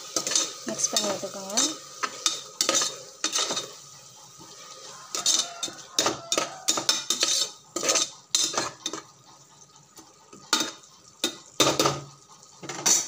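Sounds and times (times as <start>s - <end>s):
spoon scraping inside a pot: 0.0s - 9.5s, 10.1s - 13.0s.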